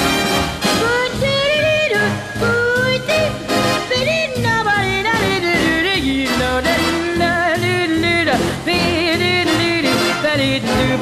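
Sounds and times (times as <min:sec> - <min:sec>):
swing jazz music: 0:00.0 - 0:11.0.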